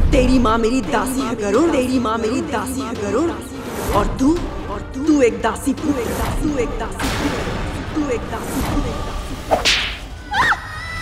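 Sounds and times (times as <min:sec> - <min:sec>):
whip-crack: 0:09.5 - 0:10.1.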